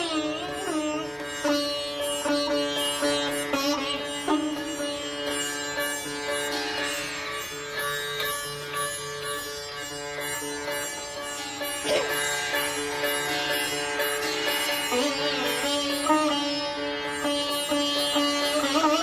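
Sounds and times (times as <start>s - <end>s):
sitar playing: 0.0s - 19.0s.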